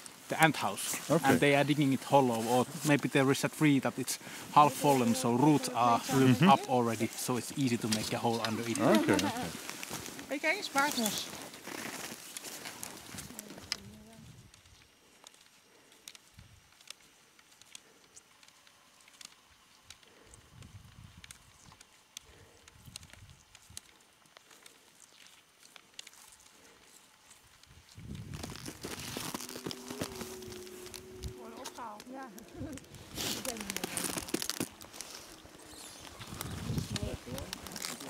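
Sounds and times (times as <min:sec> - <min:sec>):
snowshoes crunching on snow: 0:00.0 - 0:03.0, 0:03.7 - 0:13.7, 0:27.8 - 0:38.0
distant voices: 0:28.8 - 0:38.0.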